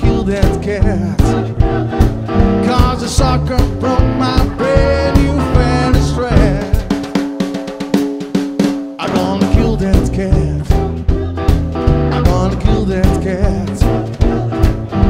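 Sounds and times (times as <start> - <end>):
blues band playing: 0.0 - 15.0.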